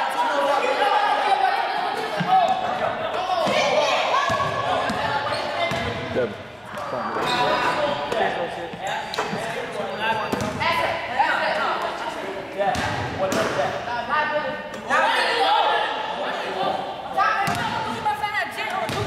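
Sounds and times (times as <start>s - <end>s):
boys chattering: 0.0s - 19.0s
basketballs bouncing on wooden floor: 4.3s - 6.1s, 17.4s - 17.8s.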